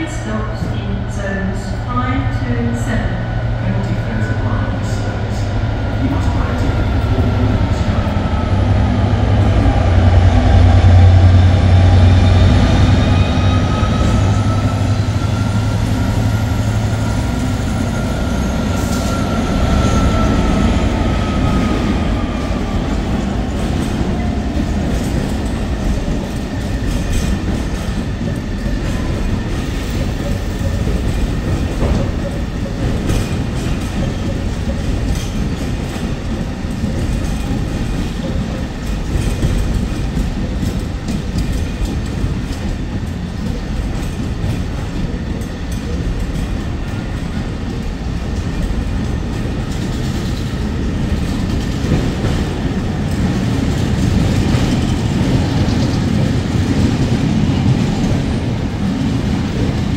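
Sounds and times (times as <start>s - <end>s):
train rumble: 0.0s - 59.9s.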